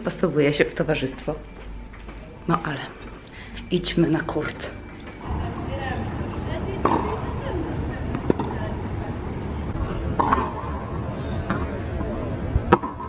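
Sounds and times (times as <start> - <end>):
tennis balls struck with rackets: 6.7 - 8.7, 10.1 - 13.0.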